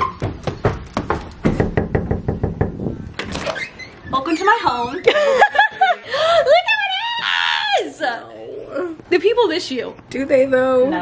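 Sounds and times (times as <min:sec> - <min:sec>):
knuckles knocking on door: 0:00.2 - 0:02.8.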